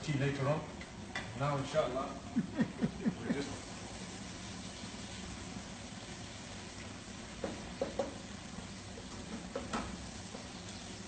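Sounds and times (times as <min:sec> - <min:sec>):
faint kitchen hum: 0:00.0 - 0:11.0
utensil knocking cookware: 0:07.4 - 0:08.2.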